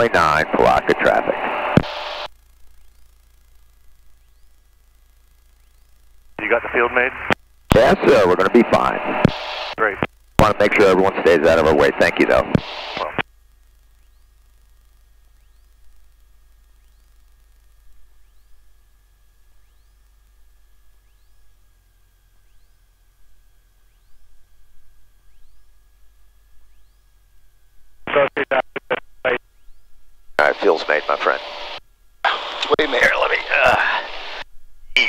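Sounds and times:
choppy radio chatter: 0.0s - 2.3s, 6.4s - 13.2s, 28.0s - 29.4s, 30.4s - 35.0s
low steady intercom hum: 0.0s - 35.0s
faint high tones and chirps: 2.1s - 6.1s, 13.8s - 27.3s.

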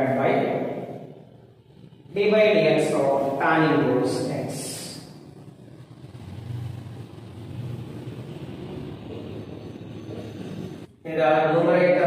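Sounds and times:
low engine rumble: 0.0s - 11.8s.

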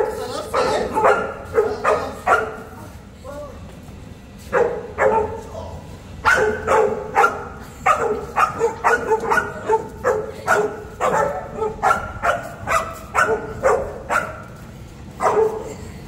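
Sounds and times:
young dog barking in high yaps: 0.0s - 2.7s, 4.5s - 5.5s, 6.2s - 14.5s, 15.2s - 15.7s.

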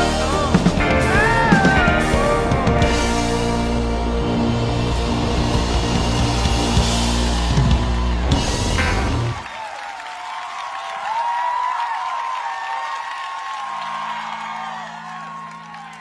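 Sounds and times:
rock band playing loudly: 0.0s - 9.4s
crowd cheering and whistling: 0.0s - 16.0s.

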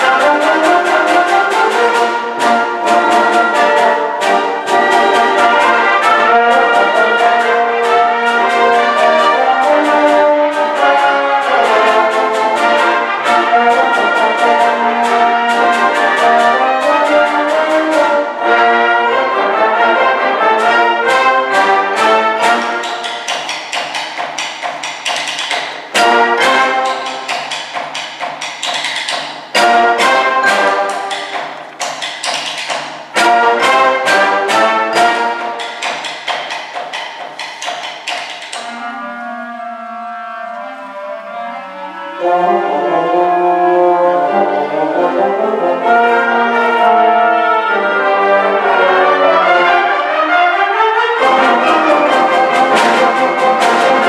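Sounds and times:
wind band playing: 0.0s - 54.0s.

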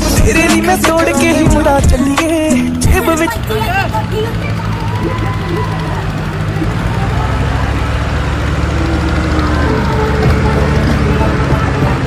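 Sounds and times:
diesel tractor engine droning: 0.0s - 12.0s.

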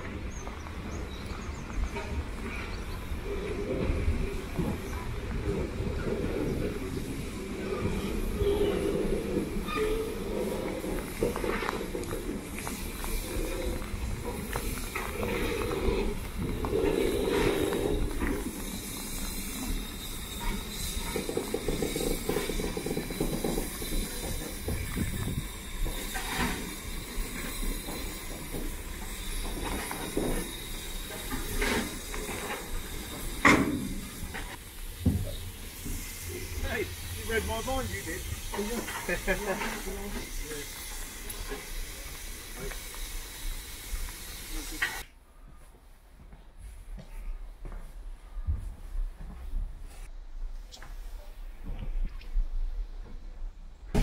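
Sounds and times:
steam locomotive rumbling: 0.0s - 45.2s
steam hissing: 2.2s - 45.1s.

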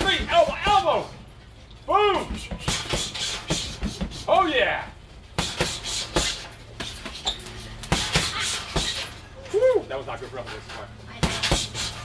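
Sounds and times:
punches thudding on heavy bag: 2.1s - 4.3s, 5.3s - 9.2s, 11.1s - 12.0s.

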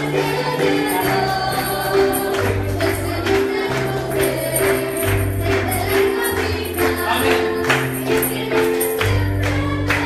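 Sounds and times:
keyboard chords: 0.0s - 10.0s
voices singing together: 0.0s - 10.0s.

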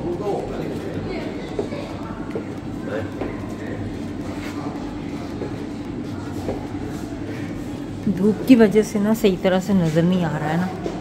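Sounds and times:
constant hum: 0.0s - 11.0s.

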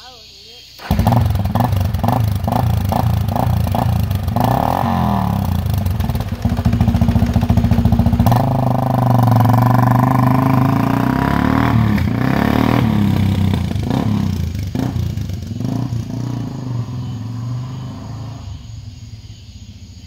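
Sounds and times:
atv engine revving: 0.8s - 19.9s.

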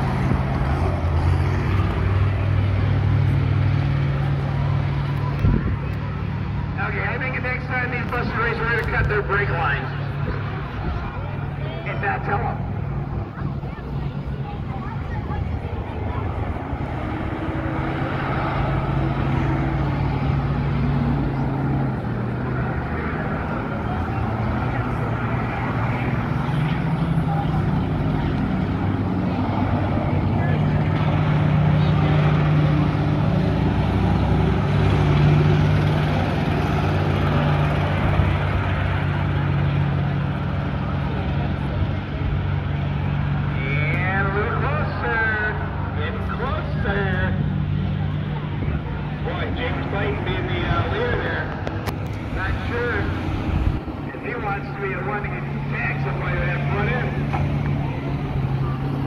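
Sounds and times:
bus engines droning: 0.0s - 59.0s.

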